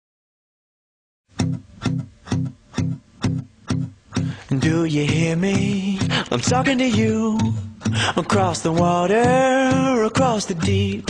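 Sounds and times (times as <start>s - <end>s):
plucked guitar notes: 1.3s - 11.0s.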